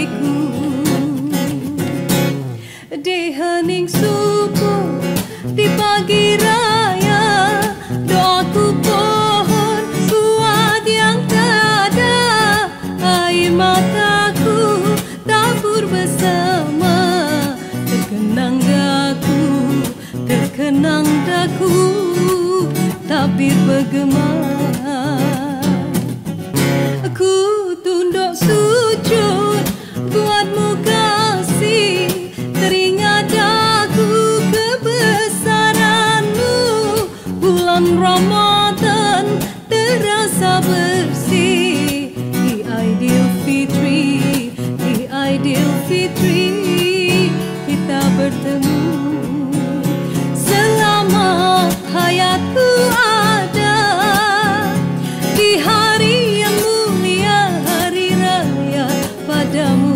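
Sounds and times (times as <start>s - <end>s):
woman singing a slow ballad: 0.0s - 26.1s, 26.8s - 59.9s
acoustic guitar: 0.0s - 59.9s.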